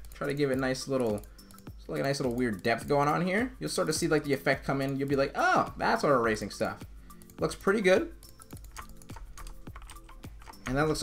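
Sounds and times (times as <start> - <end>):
computer mouse clicking: 0.0 - 2.6, 8.2 - 11.0
faint background music: 0.0 - 11.0.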